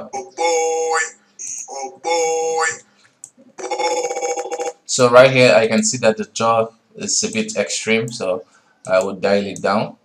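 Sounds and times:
buzzy stuttering voice clip: 0.0 - 2.8, 3.6 - 4.9.

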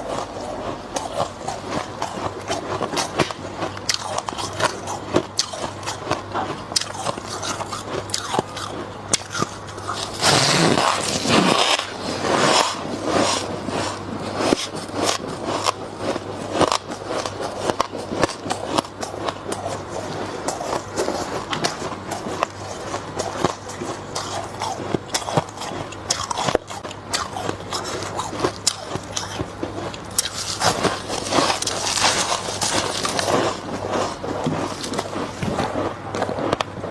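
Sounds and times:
crunching frost being chewed: 0.0 - 36.9.

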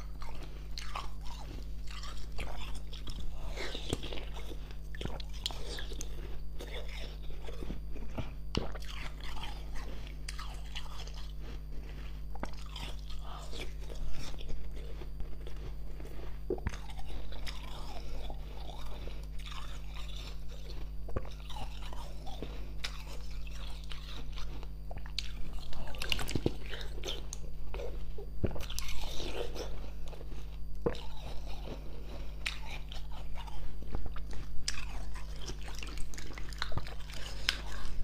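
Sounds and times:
chewing ice crunching: 0.0 - 38.0
steady low hum: 0.0 - 38.0.

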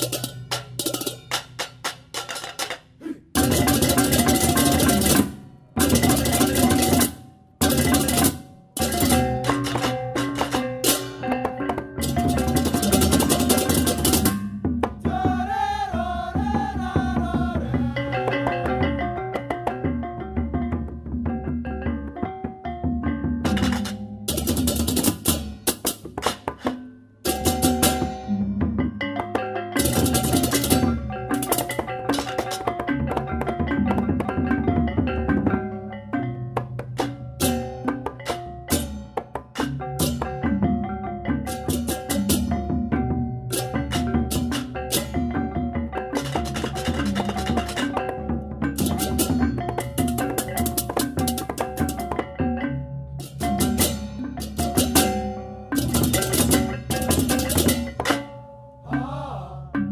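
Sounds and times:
drums: 0.0 - 59.9
gamelan playing: 0.0 - 59.9
pot gongs and gongs: 3.3 - 14.5.

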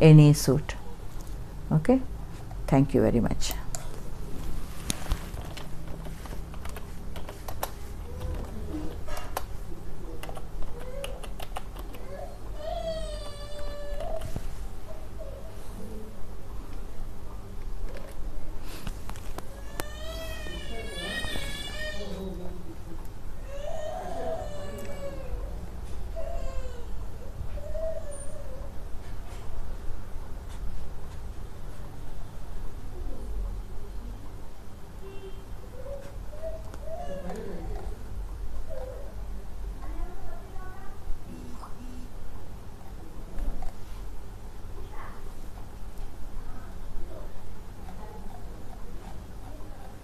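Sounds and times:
computer keys clicking: 5.4 - 8.4, 10.2 - 12.0.

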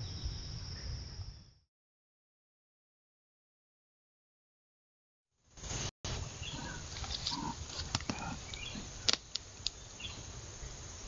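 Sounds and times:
snaps and crackles of dry litter: 6.9 - 9.8.

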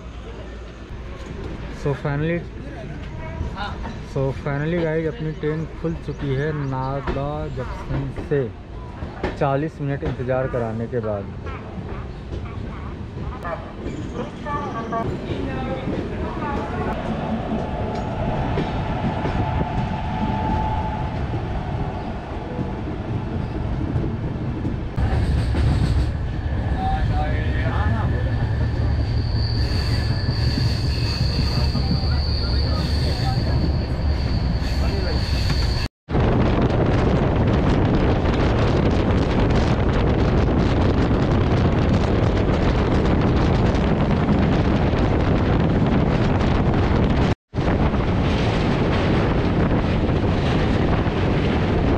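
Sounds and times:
train rushing at speed: 0.0 - 51.9
train wheel-on-rail rumble: 0.0 - 51.9.

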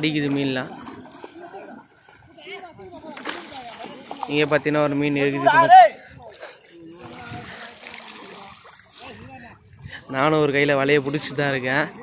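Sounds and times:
fish splashing in water: 0.0 - 4.6, 6.3 - 9.6.

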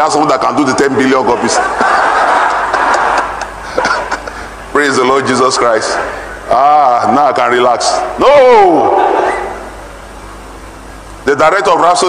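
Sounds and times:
faint low hum: 0.0 - 12.0
man shouting in reverberant hall: 5.3 - 9.7.

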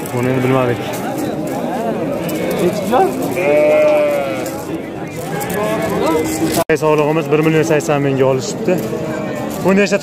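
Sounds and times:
sheep bleating: 0.0 - 0.8, 2.1 - 4.7
people talking: 0.0 - 10.0.

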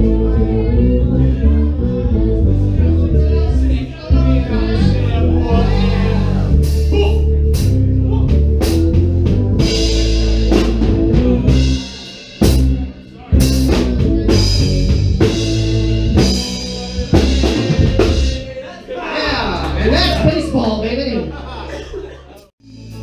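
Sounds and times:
live band playing: 0.0 - 18.6, 22.6 - 23.0.

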